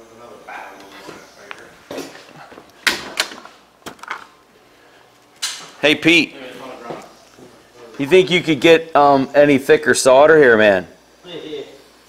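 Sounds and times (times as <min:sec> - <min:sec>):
man calling out: 0:08.0 - 0:10.8.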